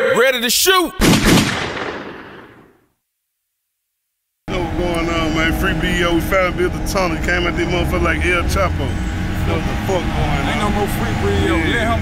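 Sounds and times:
gunshot with echo: 0:01.0 - 0:02.8.

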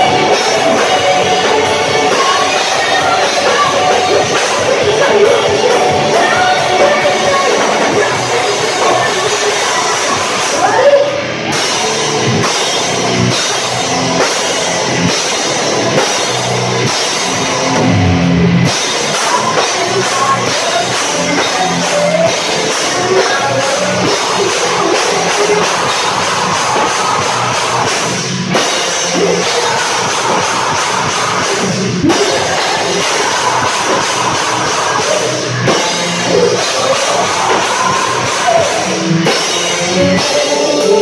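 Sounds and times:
distorted electric guitar: 0:00.0 - 0:41.0
drum kit: 0:00.0 - 0:41.0
rock band playing live: 0:00.0 - 0:41.0.

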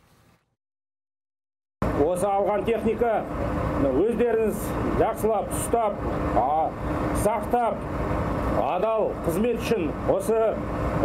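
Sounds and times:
continuous low rumble: 0:01.8 - 0:11.0
man speaking into a microphone: 0:02.0 - 0:07.8, 0:08.6 - 0:10.6.

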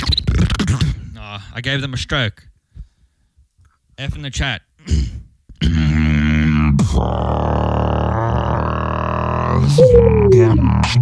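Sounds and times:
beatboxing low drone: 0:04.9 - 0:11.0
higher tone sliding down: 0:09.8 - 0:10.4.

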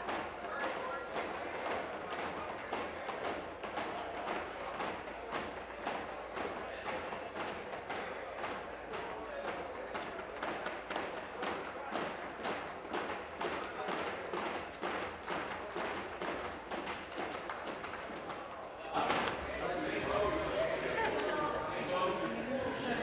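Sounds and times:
crowd chatter: 0:00.0 - 0:23.0
murmur of voices: 0:00.0 - 0:23.0.

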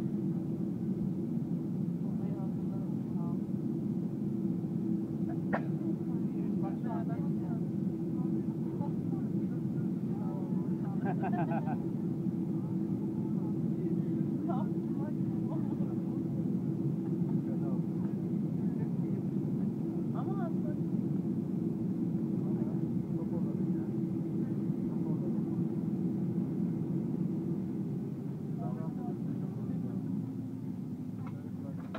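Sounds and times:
engine hum: 0:00.0 - 0:31.9
jet engines rumbling: 0:00.0 - 0:31.9.

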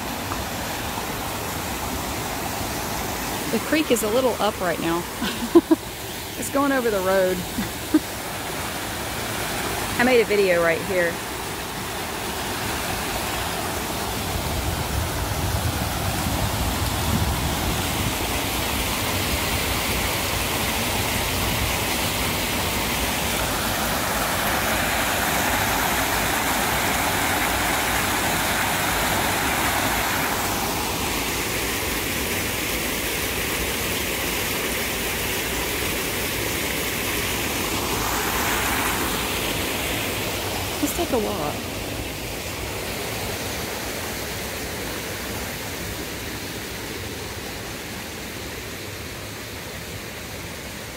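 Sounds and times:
water rushing over spillway: 0:00.0 - 0:50.9.

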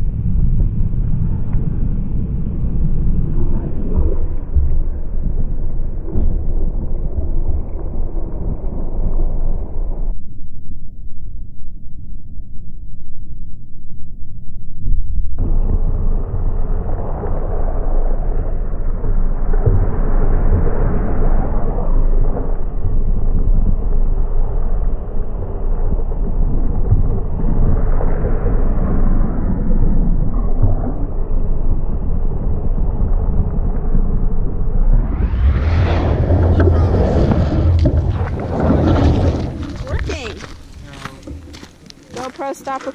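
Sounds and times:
wind buffeting microphone: 0:00.0 - 0:10.1, 0:15.4 - 0:42.9.

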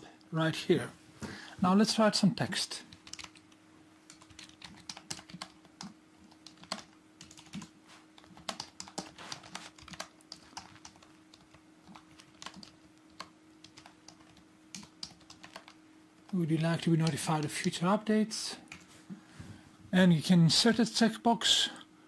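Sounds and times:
faint steady hum: 0:00.0 - 0:22.0
computer keyboard typing: 0:02.9 - 0:03.5, 0:04.1 - 0:17.8.

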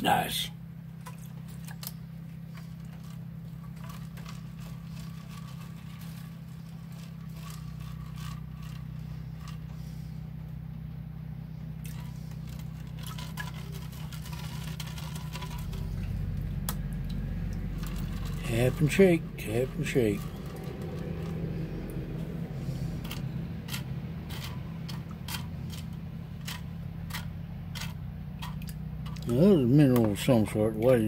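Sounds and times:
steady low hum: 0:00.0 - 0:31.0
water sloshing and trickling: 0:00.1 - 0:10.5, 0:11.6 - 0:31.0.

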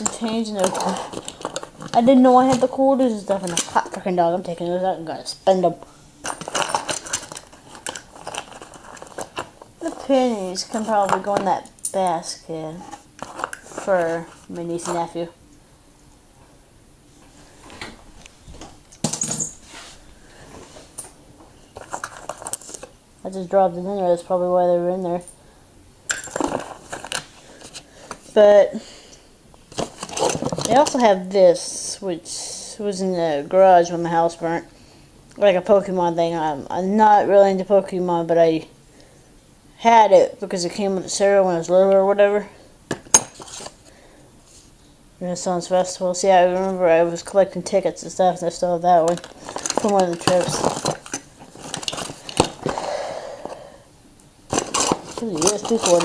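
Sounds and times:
small objects rummaged in a box: 0:00.0 - 0:02.0, 0:06.2 - 0:11.4, 0:12.9 - 0:15.0, 0:21.8 - 0:22.9, 0:26.1 - 0:27.8, 0:29.7 - 0:31.0, 0:49.0 - 0:52.8, 0:54.5 - 0:56.0
faint rustling: 0:12.6 - 0:15.4, 0:16.4 - 0:22.9
small hard objects clinking: 0:26.1 - 0:27.2, 0:49.1 - 0:52.8, 0:54.5 - 0:56.0.

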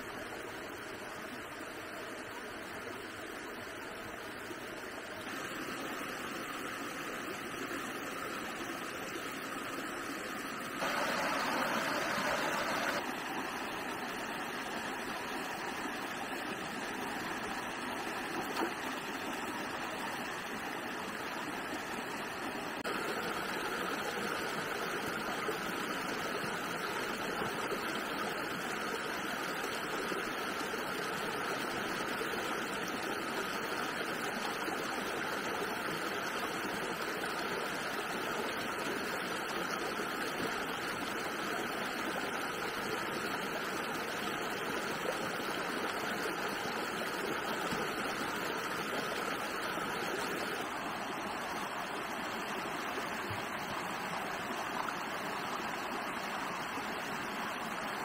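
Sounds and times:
stream flowing over stones: 0:00.0 - 0:58.0.

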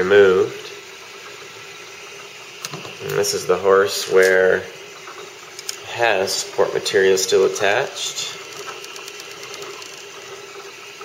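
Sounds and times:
printer fan and motors humming: 0:00.0 - 0:11.0.

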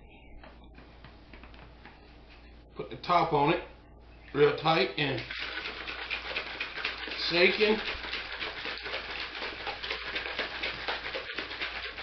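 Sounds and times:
liquid sloshing in shaken bottle: 0:04.5 - 0:12.0.

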